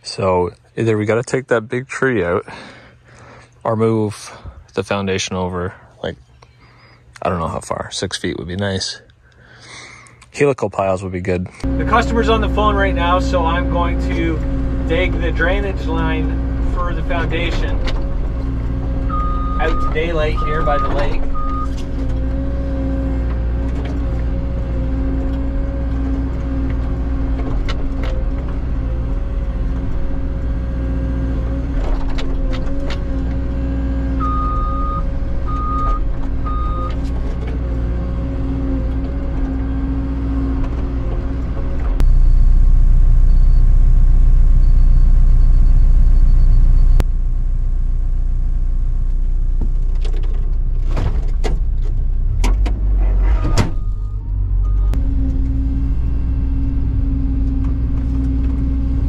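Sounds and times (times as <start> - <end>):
hydraulics working: 11.6 - 43.7, 49.7 - 59.0
excavator engine drone: 11.6 - 50.8, 51.7 - 59.0
short beeps: 19.1 - 21.8, 34.2 - 36.9, 42.0 - 43.8, 44.5 - 47.0.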